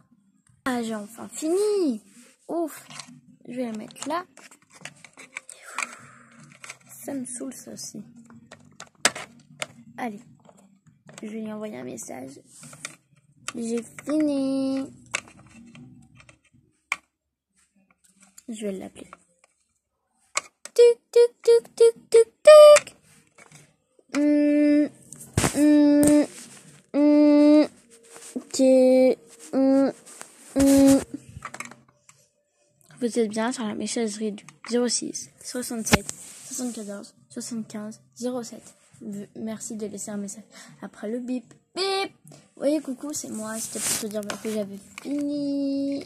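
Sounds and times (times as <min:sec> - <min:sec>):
plastic toys clicking and knocking: 0:02.8 - 0:07.1, 0:08.2 - 0:09.8, 0:12.7 - 0:17.1, 0:20.3 - 0:20.8, 0:30.6 - 0:32.1.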